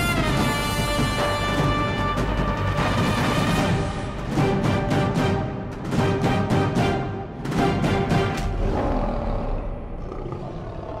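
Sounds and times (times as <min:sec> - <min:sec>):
lion roar: 0:08.4 - 0:11.0.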